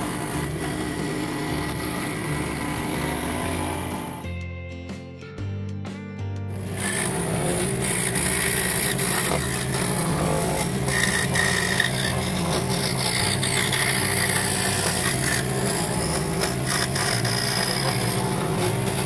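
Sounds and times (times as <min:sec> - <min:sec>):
scroll saw cutting wood: 0:00.0 - 0:04.3, 0:06.5 - 0:19.0.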